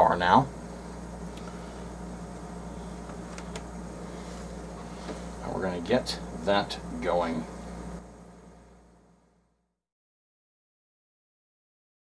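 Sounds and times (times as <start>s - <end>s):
low electrical hum: 0.0s - 9.8s.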